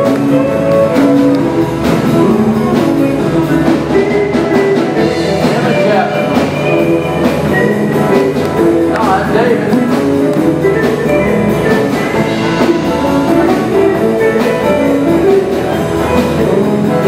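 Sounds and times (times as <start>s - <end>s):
live band with guitar and drums: 0.0s - 17.0s.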